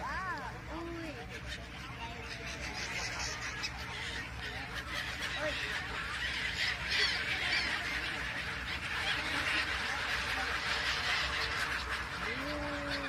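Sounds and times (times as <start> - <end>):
gulls calling: 0.0 - 13.0.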